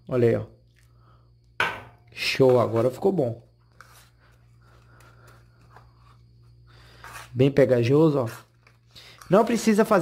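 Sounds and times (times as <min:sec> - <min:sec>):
steady low hum: 0:00.0 - 0:09.5.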